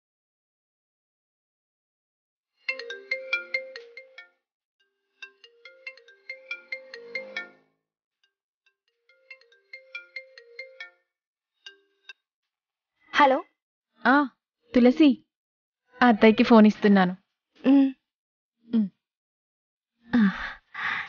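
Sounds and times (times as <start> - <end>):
mobile phone ringtone: 2.6 - 7.7, 9.0 - 12.1.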